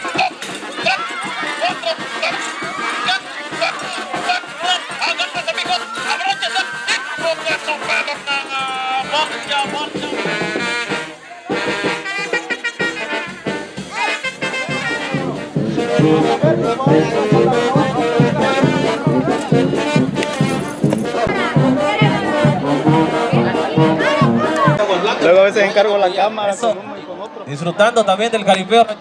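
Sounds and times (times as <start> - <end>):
brass band playing: 0.0 - 24.9.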